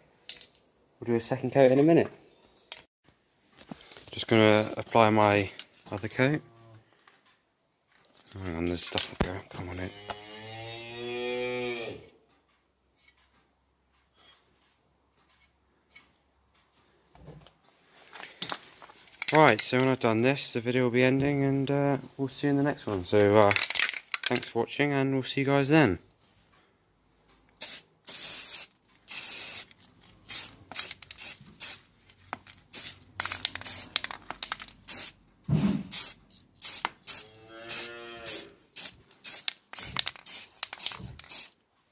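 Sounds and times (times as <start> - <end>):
cow mooing: 9.8 - 12.1, 37.2 - 38.6
spray paint can hissing: 27.6 - 31.8, 32.7 - 34.1, 34.8 - 35.2, 35.9 - 41.6.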